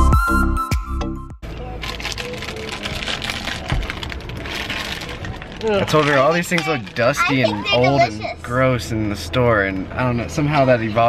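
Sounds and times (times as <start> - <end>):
plastic wrapping crinkling: 1.7 - 7.4.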